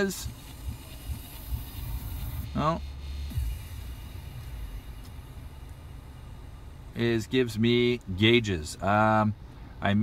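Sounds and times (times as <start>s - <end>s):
car engine idling hum: 0.0s - 10.0s.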